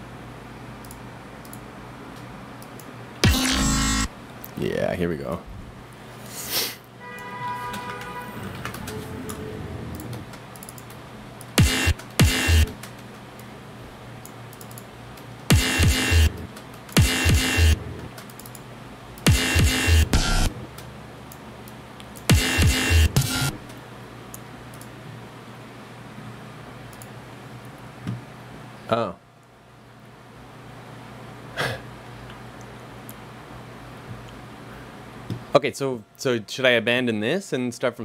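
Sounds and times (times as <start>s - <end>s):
breakbeat drum samples: 11.6s - 12.6s, 15.5s - 16.3s, 19.3s - 20.5s, 22.3s - 23.4s.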